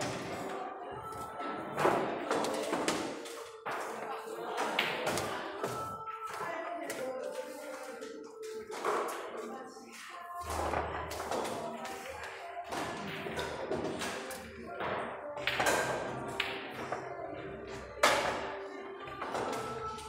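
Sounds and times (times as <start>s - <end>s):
background music: 0.0s - 20.0s
pool balls clicking together: 19.1s - 20.0s.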